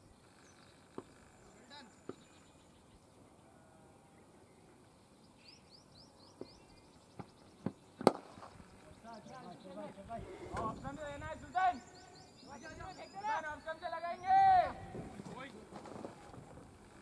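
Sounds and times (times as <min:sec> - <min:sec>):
bird chirping: 0:00.0 - 0:15.5
cricket bat striking ball: 0:07.6 - 0:08.4.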